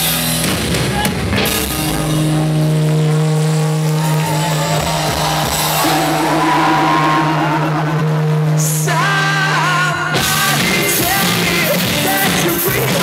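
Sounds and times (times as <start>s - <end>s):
live rock band droning chord: 0.0s - 13.0s
wavering high note: 1.7s - 10.2s.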